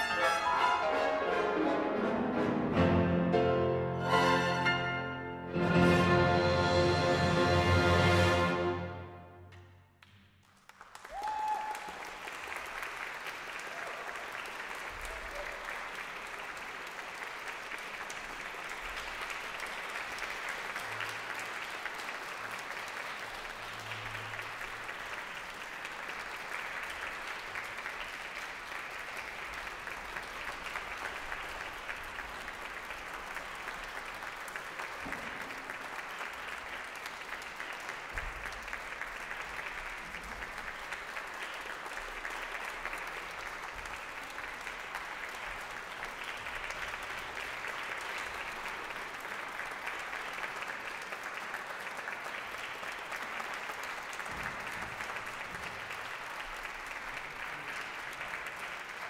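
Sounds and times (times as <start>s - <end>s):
audience applauding: 10.0s - 59.0s.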